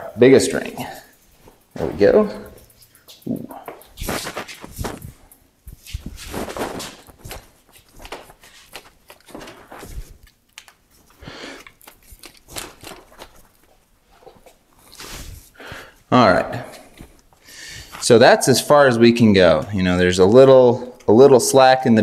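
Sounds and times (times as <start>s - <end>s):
bicycle chain rattling: 0.4s - 7.3s.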